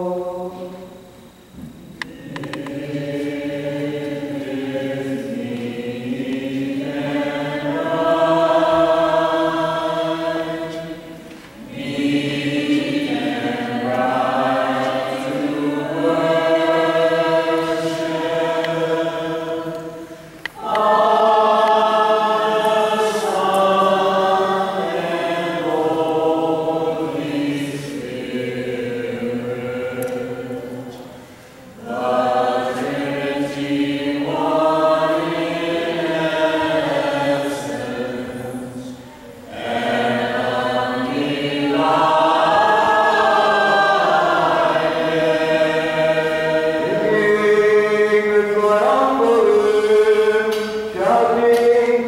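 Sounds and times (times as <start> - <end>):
group chanting in unison: 0.0 - 1.3, 1.9 - 52.0.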